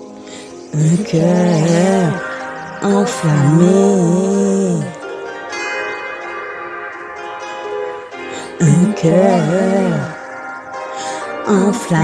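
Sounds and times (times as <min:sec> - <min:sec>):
instrumental backing music chords: 0:00.0 - 0:12.0.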